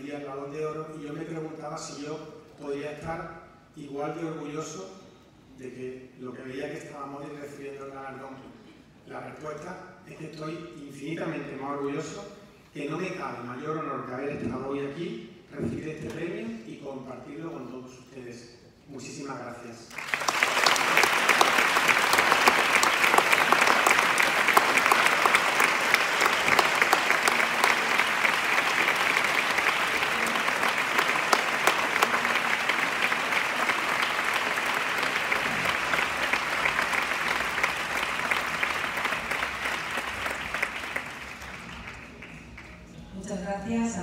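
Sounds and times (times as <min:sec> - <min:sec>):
audience applauding: 0:19.9 - 0:42.9.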